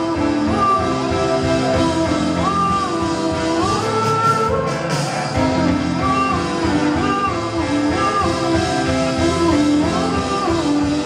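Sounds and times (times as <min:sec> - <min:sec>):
grand piano playing: 0:00.0 - 0:11.0
person singing long notes: 0:00.0 - 0:11.0.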